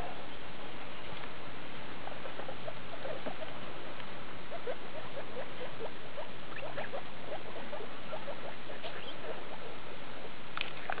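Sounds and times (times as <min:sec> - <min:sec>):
guinea pigs squeaking: 0:01.9 - 0:11.0.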